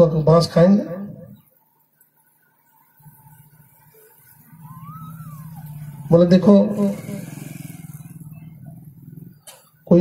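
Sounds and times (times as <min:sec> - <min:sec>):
small engine running: 0:03.1 - 0:09.8.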